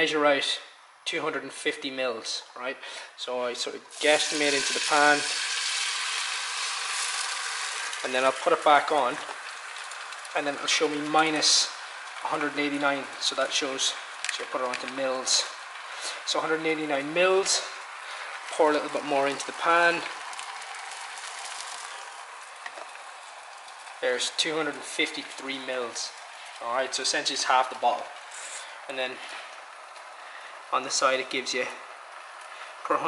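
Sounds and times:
liquid pouring into pan: 3.9s - 28.9s
egg whites sizzling in pan: 3.9s - 30.7s.

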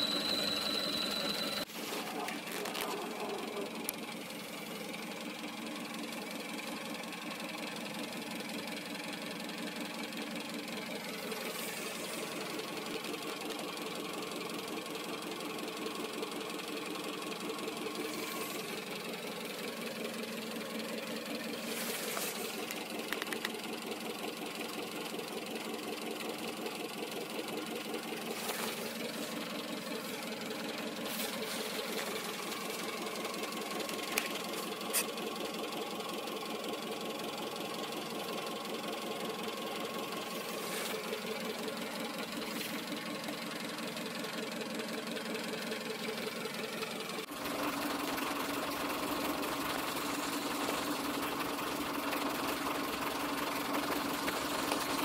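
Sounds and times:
car engine idling: 0.0s - 55.0s
sharp clicks: 22.6s - 23.6s.

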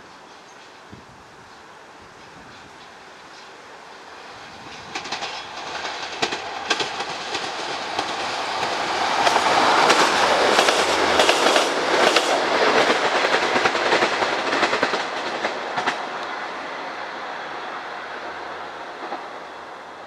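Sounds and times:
diesel train passing: 0.0s - 20.0s
wheels clicking over rail joints: 4.6s - 16.3s.

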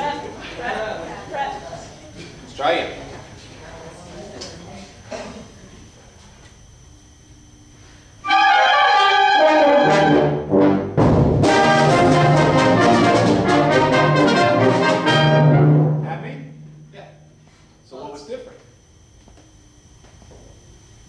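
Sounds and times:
concert band playing: 8.2s - 16.1s.

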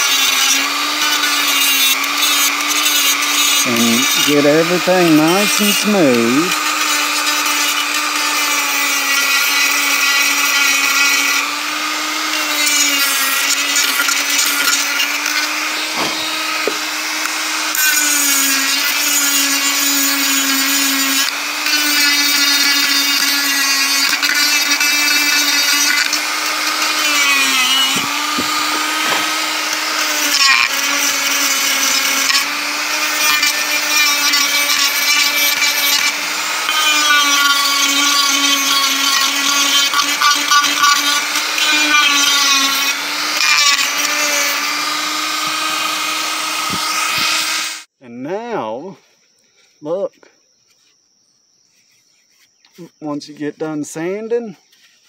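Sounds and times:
rotary tool sanding wood: 0.0s - 47.9s.

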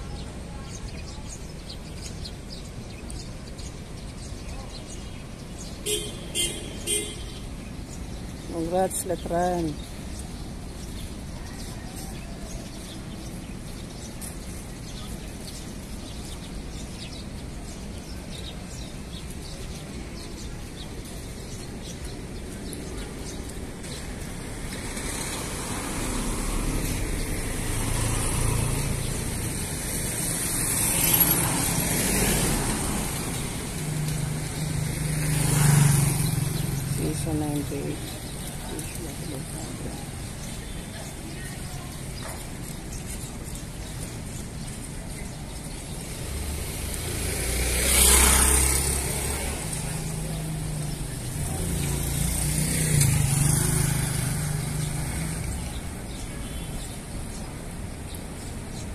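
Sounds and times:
low traffic rumble: 0.0s - 58.9s
vehicles passing: 0.0s - 58.9s
vehicle horn tooting: 5.9s - 7.4s.

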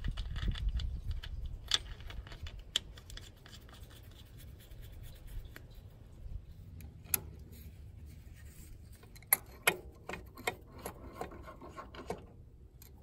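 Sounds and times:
fingers scratching on painted metal: 0.0s - 5.9s, 7.2s - 12.3s.

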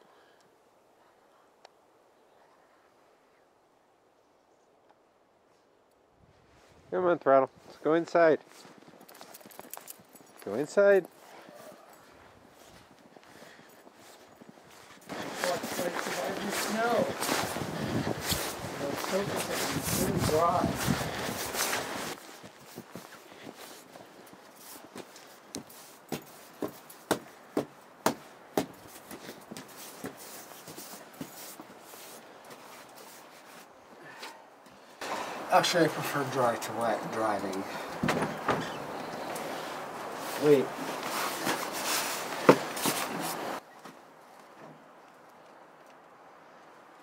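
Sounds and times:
rustling noise: 5.5s - 6.9s, 7.5s - 33.8s, 35.0s - 45.4s
footsteps in deep snow: 7.6s - 34.0s, 38.7s - 43.6s
sharp footsteps on porch: 7.6s - 44.9s.

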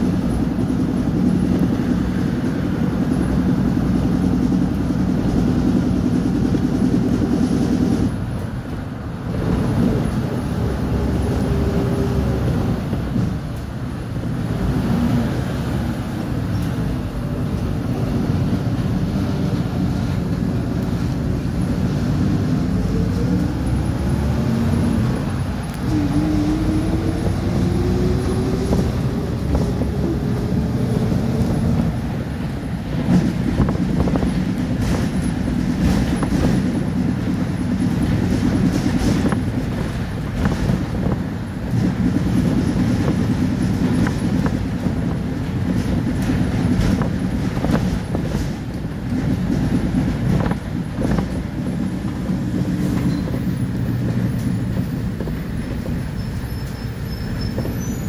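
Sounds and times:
bus engine and road rumble: 0.0s - 58.0s
engine whine rising in pitch: 22.1s - 31.9s
bus fittings rattling: 26.8s - 58.0s.

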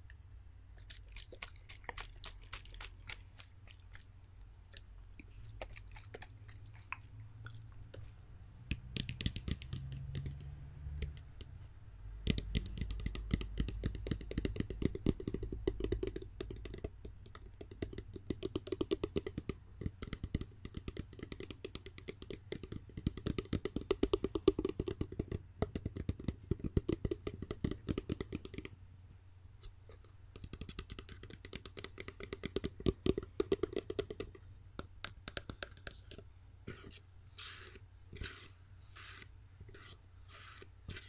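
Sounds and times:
fingernails tapping on spray bottle: 12.2s - 28.8s, 30.4s - 41.0s.

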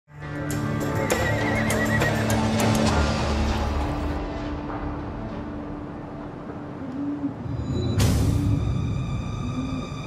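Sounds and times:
music: 0.1s - 10.0s
horse whinnying: 1.0s - 2.4s.

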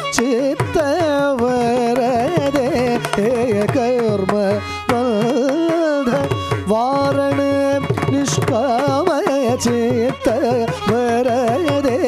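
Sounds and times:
man singing with ornaments: 0.0s - 12.0s
violin: 0.0s - 12.0s.

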